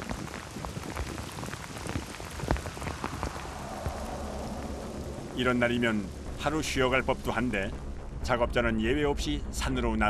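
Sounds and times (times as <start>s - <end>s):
rain drops on hard surface: 0.0s - 9.8s.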